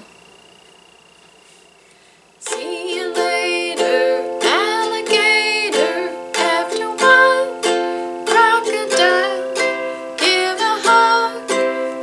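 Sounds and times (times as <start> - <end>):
ukulele strumming chords: 2.4 - 12.0
woman singing: 2.4 - 12.0.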